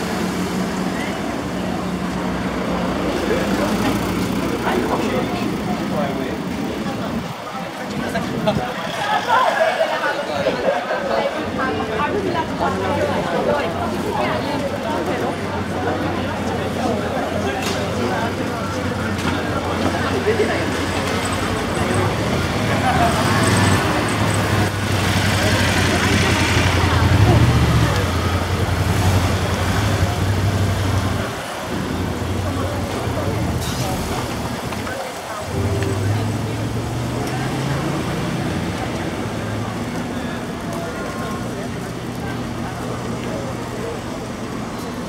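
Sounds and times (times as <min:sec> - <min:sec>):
passers-by chattering: 0:00.0 - 0:45.0.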